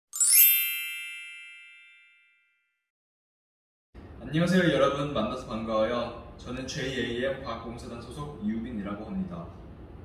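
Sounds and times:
bright chime ding: 0.1s - 2.6s.

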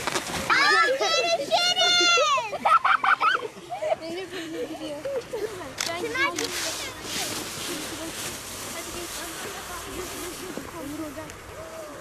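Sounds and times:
children calling and chattering: 0.4s - 12.0s
child sliding down snow: 6.2s - 11.2s.

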